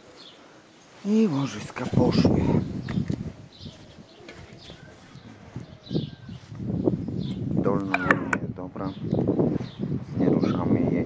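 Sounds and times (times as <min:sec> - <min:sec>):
faint bird calls: 0:02.5 - 0:06.5.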